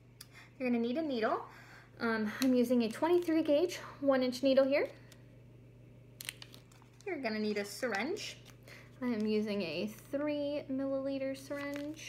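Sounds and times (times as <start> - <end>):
low steady hum: 0.0 - 12.0
plastic blister pack crinkling: 6.1 - 10.2, 11.3 - 12.0.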